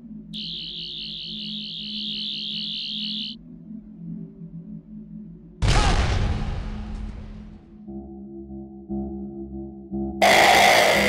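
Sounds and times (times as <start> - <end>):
low musical drone: 0.0 - 5.6, 7.6 - 11.0
high wavering electronic tone: 0.4 - 3.4.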